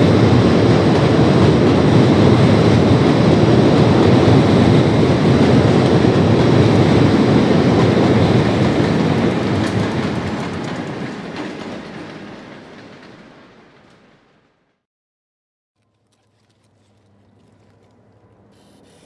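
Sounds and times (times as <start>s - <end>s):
train wheels rumbling on rails: 0.0s - 14.7s.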